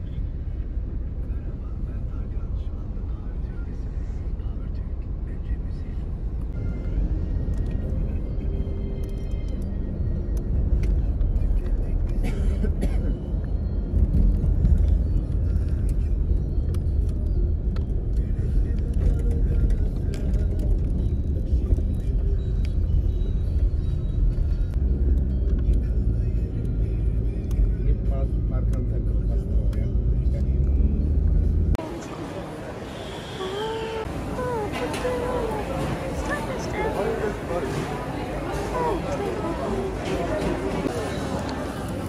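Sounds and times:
car driving rumble: 0.0 - 42.0
faint music: 0.0 - 42.0
voices: 31.8 - 42.0.

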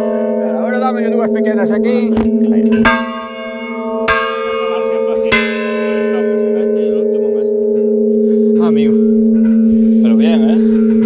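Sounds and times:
large church bell ringing: 0.0 - 11.0.

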